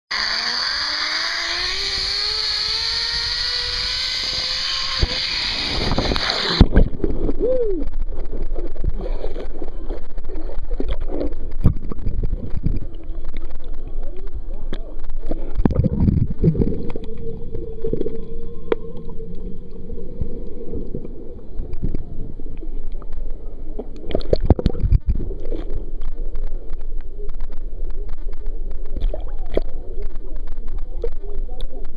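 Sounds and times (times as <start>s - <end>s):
zip line trolley whining on cable: 0.1s - 6.7s
muffled underwater water sloshing: 8.0s - 31.9s.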